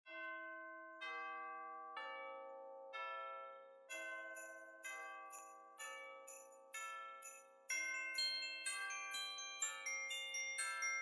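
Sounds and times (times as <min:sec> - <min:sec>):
bell-like chimes ringing: 0:03.9 - 0:11.0.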